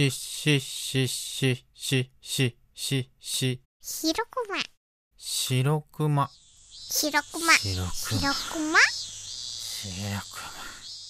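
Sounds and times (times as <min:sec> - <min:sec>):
high-pitched background hum: 0:06.2 - 0:11.0
cartoon character vocal sounds: 0:07.0 - 0:08.9.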